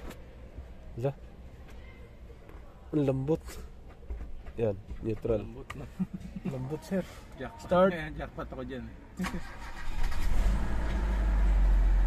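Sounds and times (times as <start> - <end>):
car engine fast idle: 9.4 - 12.0.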